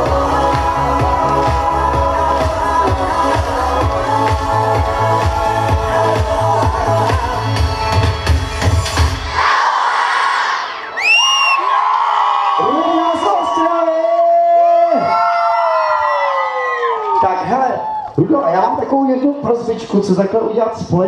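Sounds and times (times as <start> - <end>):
dance-pop song: 0.0 - 10.5
crowd of children cheering: 9.3 - 18.3.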